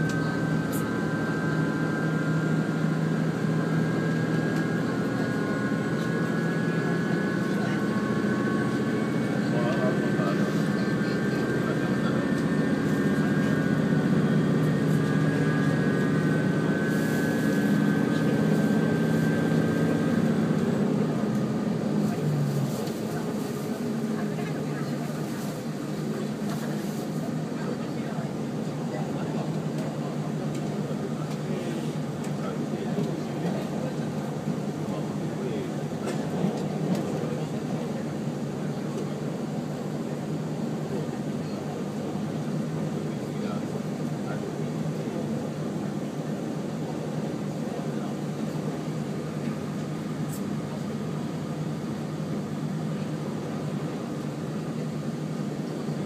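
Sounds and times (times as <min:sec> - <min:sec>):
diesel engine drone: 0:00.0 - 0:56.0.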